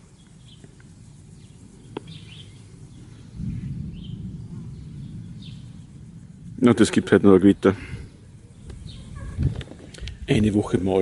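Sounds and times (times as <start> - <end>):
birds chirping: 0.0 - 11.0
low rumble: 2.4 - 10.6.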